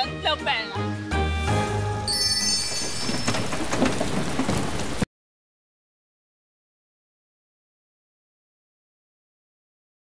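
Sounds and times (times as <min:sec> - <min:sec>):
rain falling: 0:01.4 - 0:05.1
thunder: 0:02.7 - 0:05.1.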